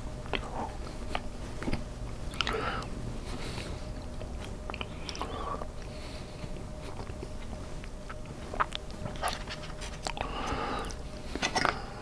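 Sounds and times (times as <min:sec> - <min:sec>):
chewing food: 0:00.2 - 0:02.9, 0:03.5 - 0:11.8
breathing: 0:02.5 - 0:03.9, 0:05.2 - 0:06.6, 0:10.2 - 0:12.0.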